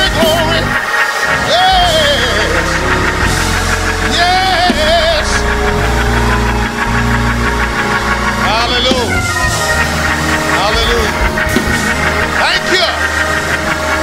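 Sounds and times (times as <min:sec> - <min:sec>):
congregation shouting praise calls: 0:00.0 - 0:14.0
keyboard chords over bass: 0:00.0 - 0:14.0.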